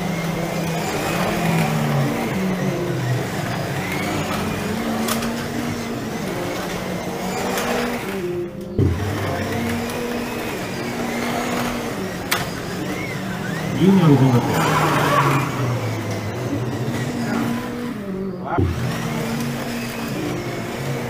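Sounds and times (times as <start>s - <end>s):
slot car motors whining: 0.0s - 21.0s.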